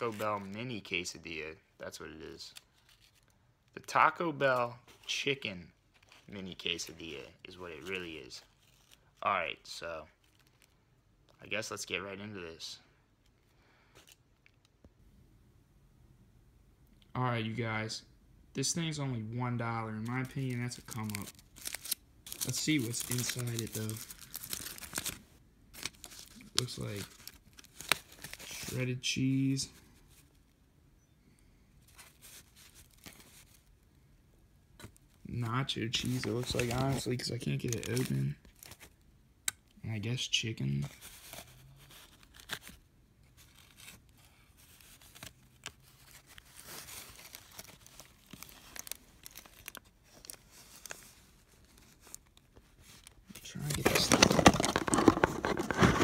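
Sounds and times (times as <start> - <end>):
aluminium foil rustling: 20.0 - 25.2, 43.4 - 56.0
loud close foil crackling: 20.0 - 25.2.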